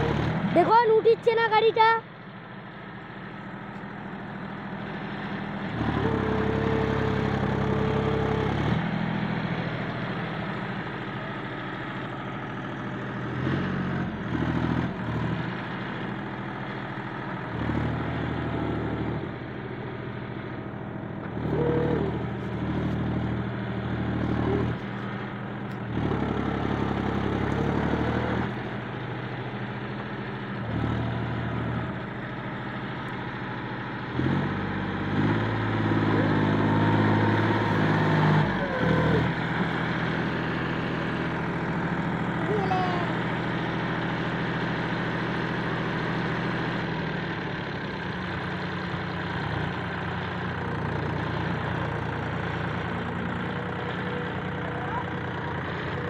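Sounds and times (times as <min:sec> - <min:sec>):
tractor diesel engine revving: 0:00.0 - 0:56.0.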